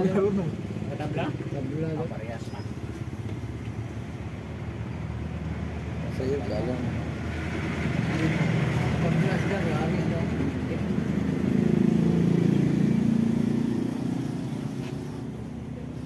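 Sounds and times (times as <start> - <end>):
vehicle engine passing by: 5.3 - 16.0.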